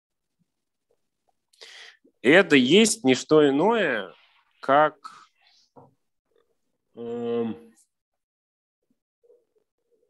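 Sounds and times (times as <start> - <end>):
speech: 2.2 - 5.2.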